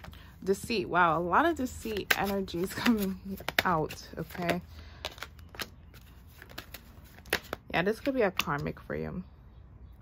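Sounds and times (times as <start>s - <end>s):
cards being handled: 1.4s - 8.7s.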